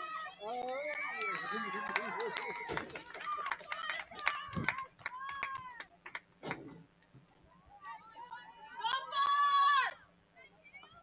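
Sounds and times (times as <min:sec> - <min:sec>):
voices calling and shouting: 0:07.3 - 0:11.0.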